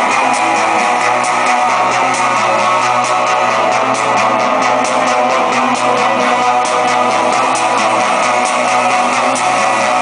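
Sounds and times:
high ticking beat: 0.0 - 10.0
live electro-rock band: 0.0 - 10.0.

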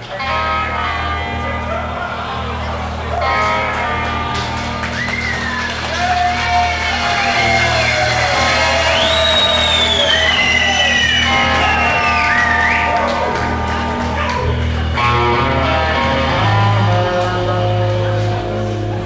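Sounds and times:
bass line: 0.0 - 19.0
electric lead guitar bending notes: 0.0 - 19.0.

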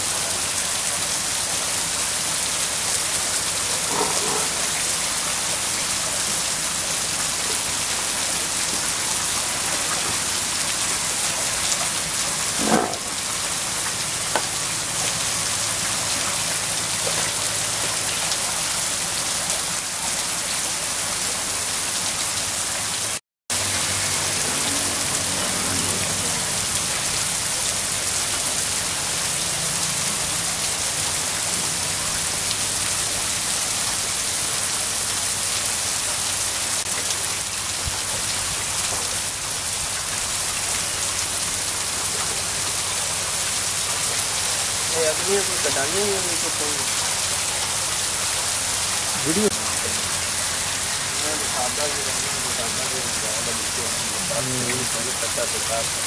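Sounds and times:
water spraying and splashing: 0.0 - 56.0.

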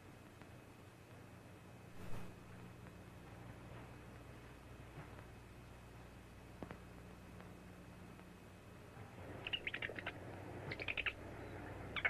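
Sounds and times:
small animal squeaking: 9.4 - 12.0.

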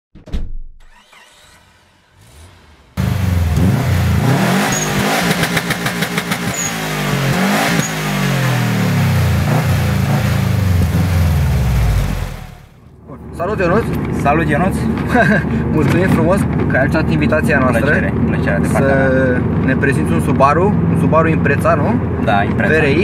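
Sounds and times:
car engine revving: 0.9 - 12.8
engine crackle: 0.9 - 12.9.

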